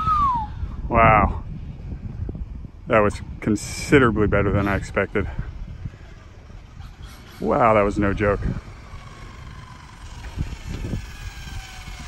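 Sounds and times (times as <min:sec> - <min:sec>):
low steady rumble: 0:00.0 - 0:12.0
electric motor whine: 0:04.4 - 0:12.0.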